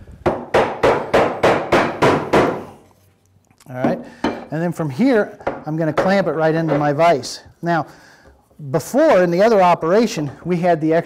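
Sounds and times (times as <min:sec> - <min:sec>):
mallet knocking wood: 0:00.3 - 0:02.7.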